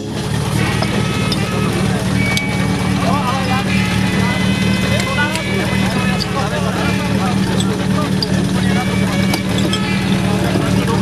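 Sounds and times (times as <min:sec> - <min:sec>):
pump engine running: 0:00.0 - 0:11.0
men calling out: 0:00.6 - 0:11.0.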